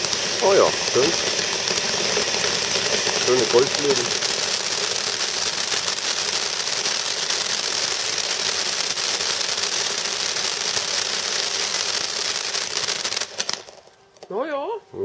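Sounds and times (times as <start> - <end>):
firework fountain rushing hiss: 0.0 - 14.7
firework crackling: 0.0 - 15.0.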